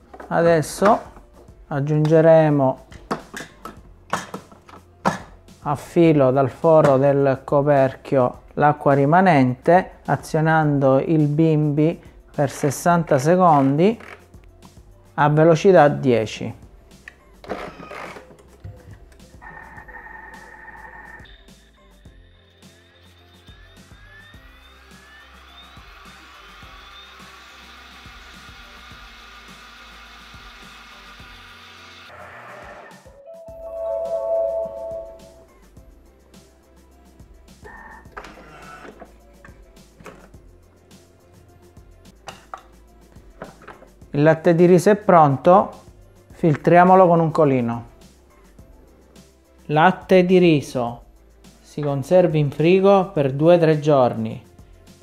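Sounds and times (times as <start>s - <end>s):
quiet background music: 0.0s - 55.0s
kitchen appliance whirring: 22.0s - 33.1s.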